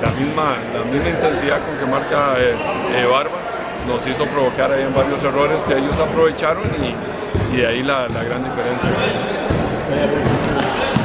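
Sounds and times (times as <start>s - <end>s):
voices chattering: 0.0s - 11.0s
basketball bouncing on floor: 5.9s - 11.0s.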